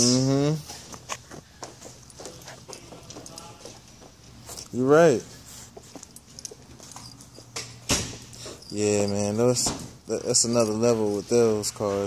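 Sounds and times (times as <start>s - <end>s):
footsteps on tiles: 0.7s - 4.8s.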